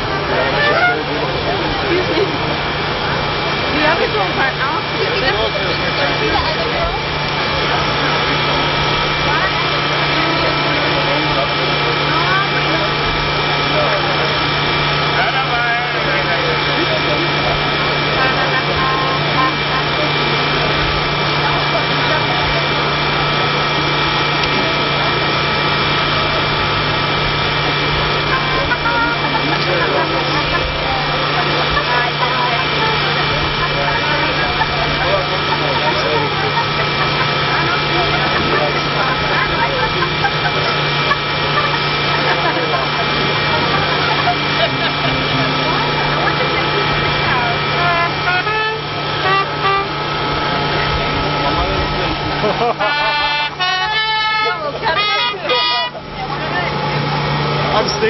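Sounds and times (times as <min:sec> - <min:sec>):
indistinct crowd chatter: 0:00.0 - 0:58.0
steady droning hum: 0:00.0 - 0:58.0.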